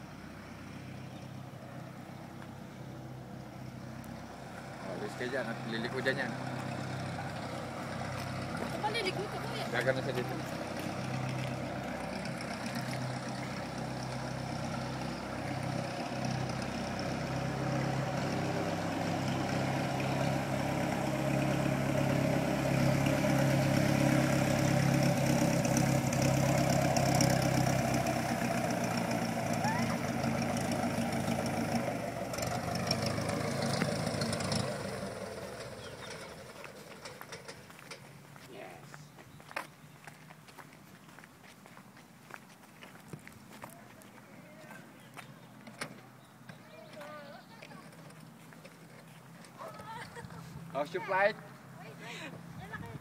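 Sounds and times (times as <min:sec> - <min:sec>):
propeller plane engine taxiing: 0:00.0 - 0:38.2.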